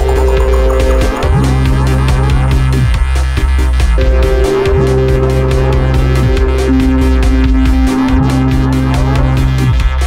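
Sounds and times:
sustained synth chord: 0:00.0 - 0:02.9, 0:03.9 - 0:09.7
electronic percussion hits: 0:00.0 - 0:03.0, 0:04.0 - 0:09.0
deep bass line: 0:00.0 - 0:10.0.

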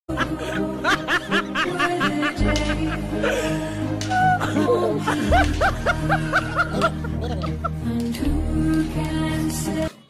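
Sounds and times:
background music with held notes: 0:00.1 - 0:10.0
person laughing: 0:00.2 - 0:07.8.

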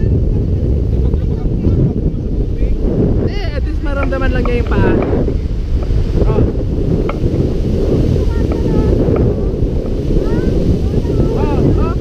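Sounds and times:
surf washing on beach: 0:00.0 - 0:12.0
wind buffeting microphone: 0:00.0 - 0:12.0.

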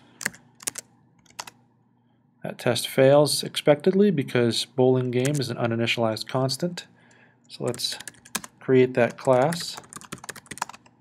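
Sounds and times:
computer keyboard keystrokes: 0:00.2 - 0:01.6, 0:07.7 - 0:08.5, 0:09.1 - 0:10.9.

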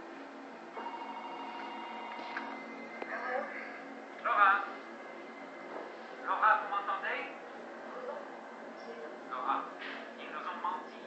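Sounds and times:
electronic telephone ringing tone: 0:00.8 - 0:03.0.

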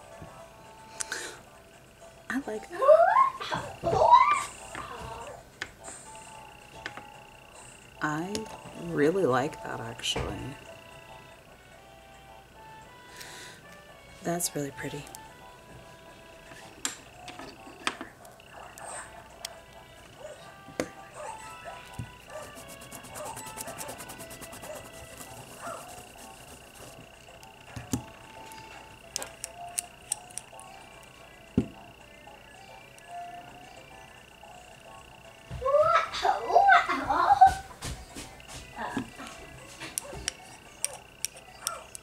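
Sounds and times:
steady high whine: 0:22.1 - 0:30.5
rapid ticking: 0:22.2 - 0:27.0
metal tools clicking and tapping: 0:39.8 - 0:42.0.

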